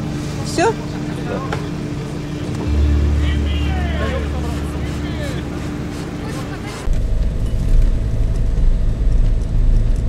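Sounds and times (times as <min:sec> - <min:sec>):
vehicle engine rumbling: 0:00.0 - 0:10.0
people talking: 0:00.2 - 0:06.9.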